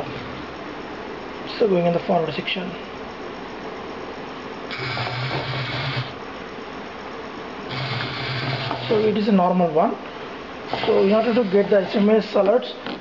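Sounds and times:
small gear motors driving wheels: 0:07.7 - 0:09.2, 0:10.7 - 0:13.0.

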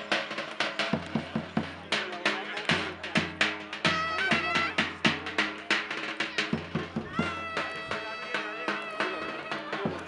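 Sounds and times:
drum struck in steady beat: 0:00.0 - 0:10.0.

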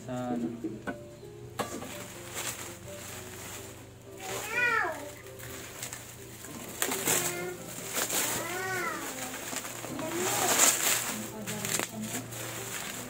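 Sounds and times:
bubble wrap crinkling: 0:01.7 - 0:13.0.

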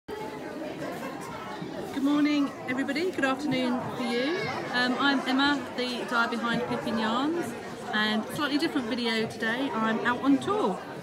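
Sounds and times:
crowd chatter: 0:00.1 - 0:11.0.

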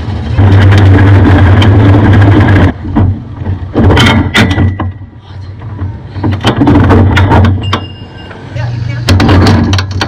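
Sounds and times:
steady low rumble: 0:00.0 - 0:07.6
knocks and clatter of tire change: 0:00.0 - 0:10.0.

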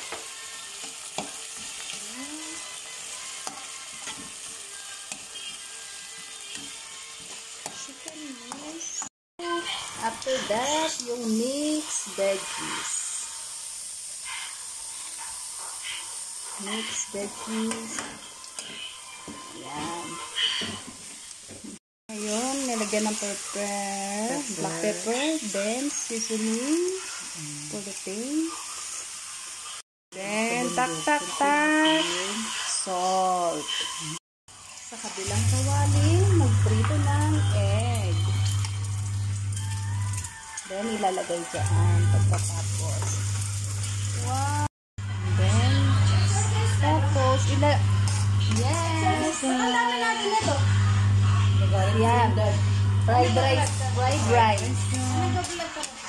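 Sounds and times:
vegetables sizzling in oil: 0:00.0 - 0:56.0.

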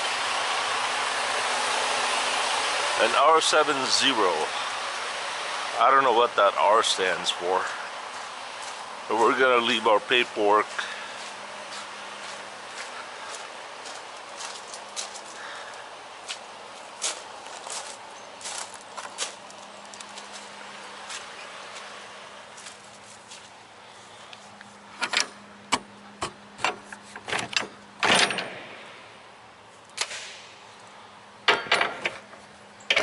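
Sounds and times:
footsteps on wet gravel: 0:06.2 - 0:24.8
metal door lock clanking: 0:25.0 - 0:28.7, 0:31.5 - 0:32.3.

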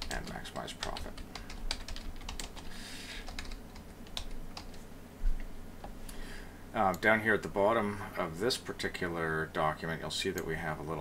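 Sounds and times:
keyboard typing: 0:00.0 - 0:04.8.

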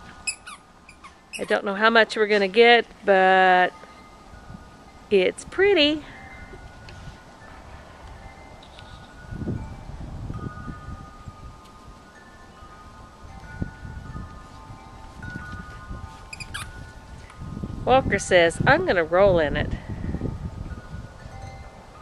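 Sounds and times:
wind chimes ringing: 0:00.0 - 0:22.0.

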